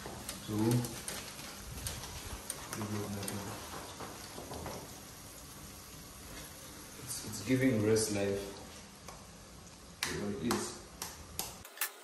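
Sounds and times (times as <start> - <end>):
vegetables sizzling in a pot: 0.0 - 10.0.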